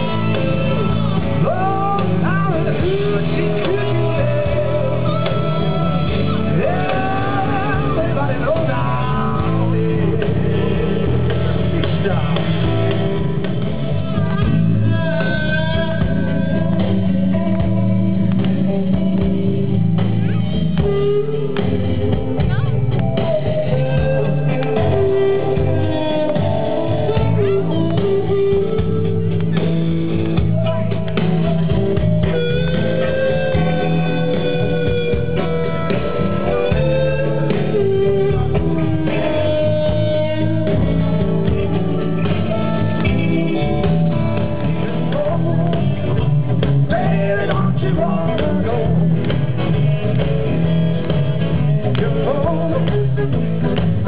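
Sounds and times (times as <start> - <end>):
blues band playing: 0.0 - 54.0
electric guitar bending notes: 0.0 - 54.0.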